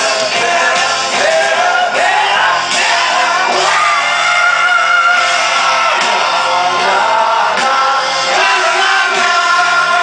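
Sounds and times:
live rock band with piano: 0.0s - 10.0s.

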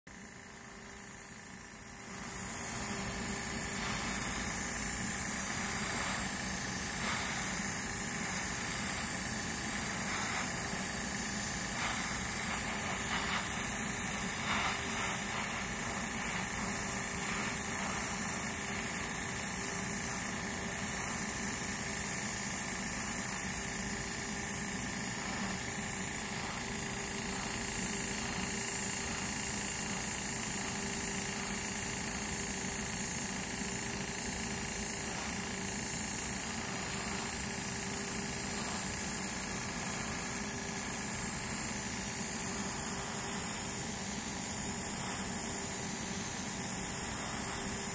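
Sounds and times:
air compressor humming: 0.1s - 47.9s
airbrush hiss: 0.1s - 47.9s.

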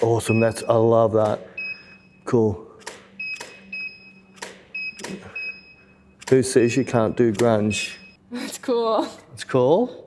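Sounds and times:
flash ready beep: 3.2s - 8.2s.

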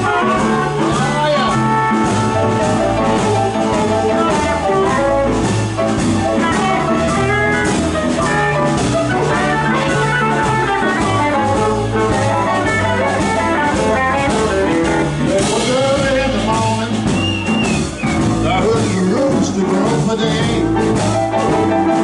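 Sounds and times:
bass: 0.0s - 22.0s
drums: 0.0s - 22.0s
guitar: 0.0s - 22.0s
piano: 0.0s - 22.0s.

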